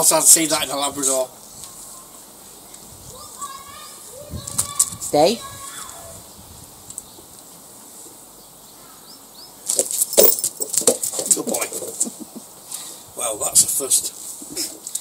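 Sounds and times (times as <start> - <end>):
dog claws clicking on paving: 9.7 - 12.1.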